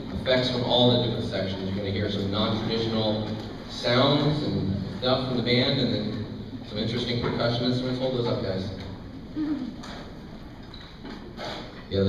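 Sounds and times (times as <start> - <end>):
murmur of voices in a hall: 0.0 - 12.0.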